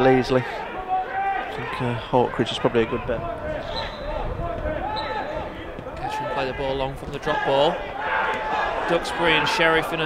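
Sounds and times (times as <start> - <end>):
distant voices calling out: 0.0 - 10.0.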